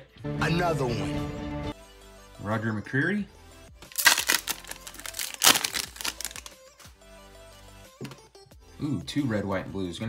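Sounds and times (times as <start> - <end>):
foil wrapper crinkling: 3.9 - 6.6.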